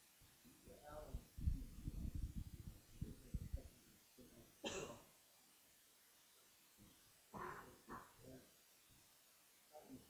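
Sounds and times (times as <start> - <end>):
muffled person speaking: 0.7 - 4.5
person coughing: 4.6 - 5.0.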